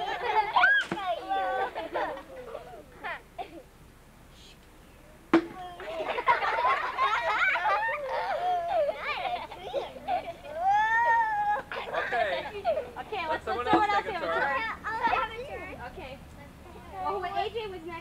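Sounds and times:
children shouting and squealing: 0.0 - 3.3, 5.5 - 13.0
sharp knock: 5.3 - 5.6.

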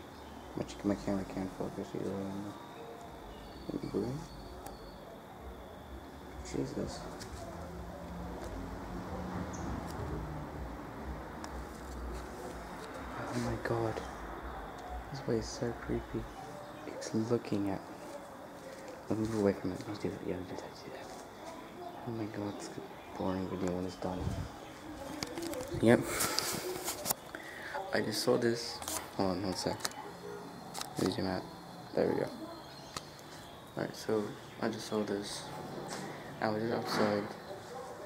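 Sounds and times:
person speaking: 9.8 - 37.8.

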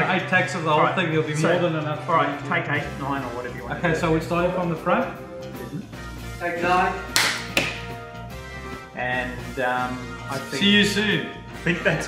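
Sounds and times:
background music: 0.0 - 12.0
sharp hand clap: 7.1 - 8.0.

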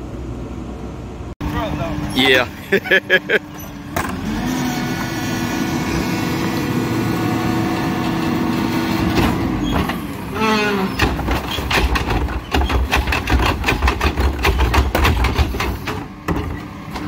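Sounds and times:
garbage truck engine whining hum: 0.0 - 17.0
hydraulics under load: 6.8 - 17.0.

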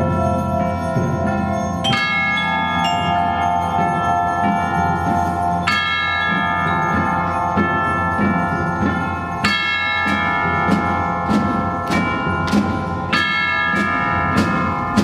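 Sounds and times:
percussion ensemble playing: 0.0 - 15.0
tubular bells chord ringing: 0.0 - 15.0.

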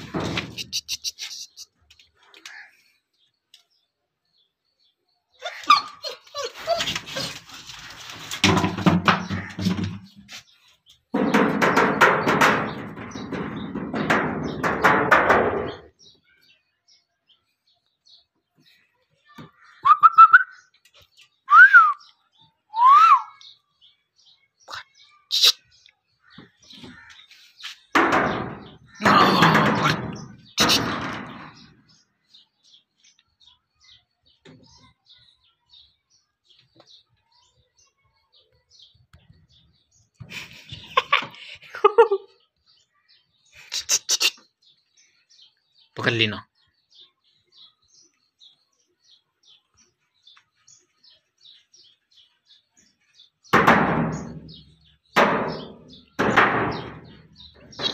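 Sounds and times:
dog squealing: 5.4 - 7.4
dog whining: 5.4 - 7.5.

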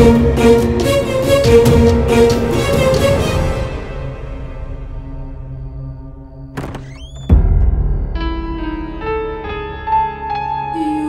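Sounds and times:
horror film score: 0.0 - 11.0
deep ringing boom: 5.0 - 10.2.

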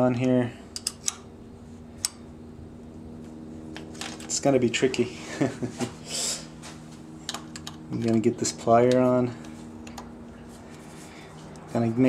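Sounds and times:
faint steady hum: 0.0 - 12.0
wrench metal clicks: 0.2 - 1.2.

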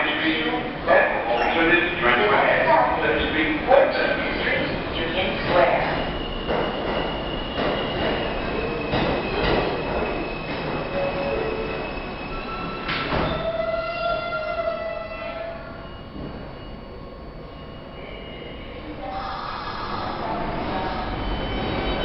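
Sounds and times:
subway train running noise: 0.0 - 22.0.

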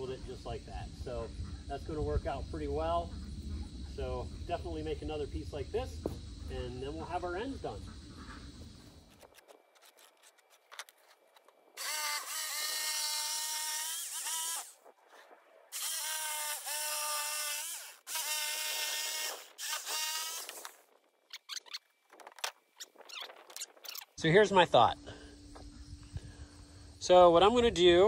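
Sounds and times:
electric jigsaw cutting: 11.8 - 14.7, 15.7 - 20.6.

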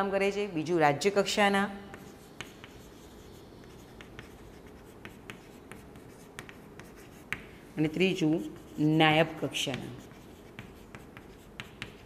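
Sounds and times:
chalk writing on a chalkboard: 1.8 - 12.0.

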